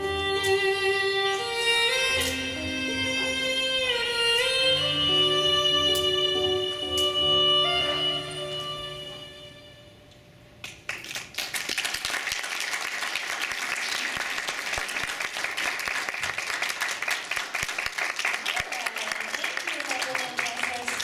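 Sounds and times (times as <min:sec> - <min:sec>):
audience clapping: 0:10.6 - 0:21.0.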